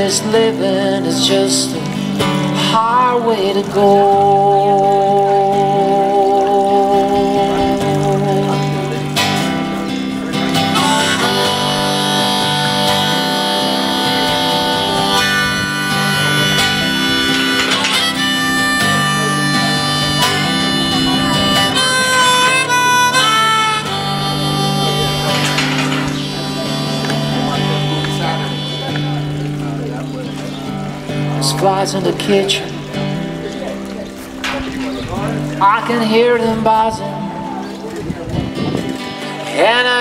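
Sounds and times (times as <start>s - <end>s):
strummed acoustic guitar chords: 0.0s - 40.0s
harmonica playing: 10.5s - 30.2s.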